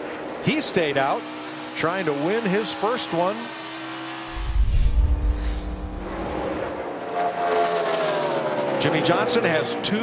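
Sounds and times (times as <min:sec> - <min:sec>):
race car engines roaring: 0:00.0 - 0:10.0.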